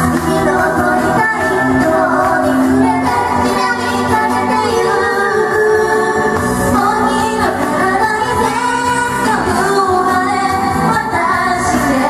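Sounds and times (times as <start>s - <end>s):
backing track: 0.0s - 12.0s
women singing: 0.0s - 12.0s.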